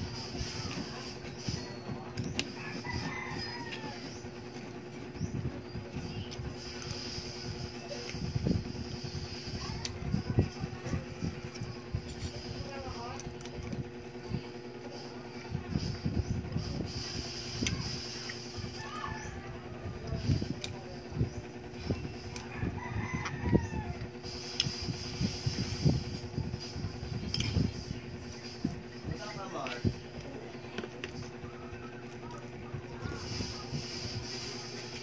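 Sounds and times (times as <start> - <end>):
chewing and eating: 0.0 - 35.0
rooster crowing: 2.5 - 4.2, 18.6 - 19.8, 22.3 - 24.1.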